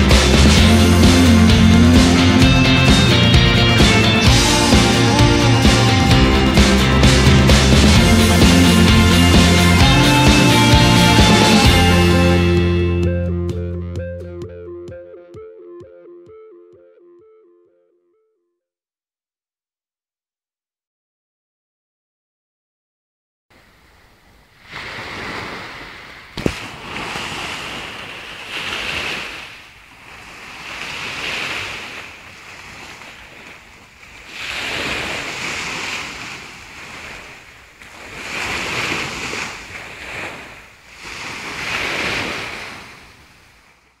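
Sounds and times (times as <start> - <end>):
sea waves breaking on a beach: 23.6 - 44.0.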